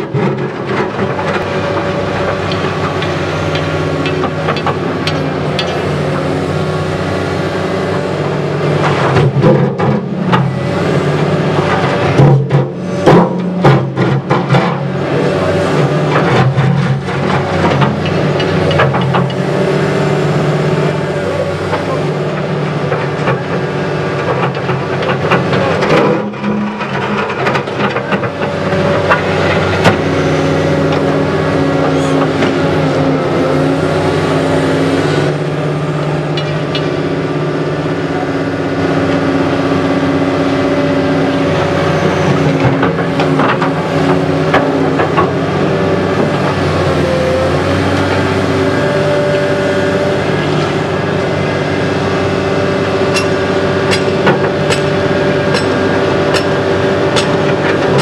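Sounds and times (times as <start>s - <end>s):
excavator diesel engine running: 0.0s - 58.0s.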